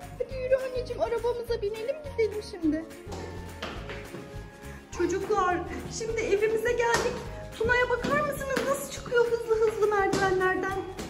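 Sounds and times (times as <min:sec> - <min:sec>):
background music with bass line: 0:00.0 - 0:08.7.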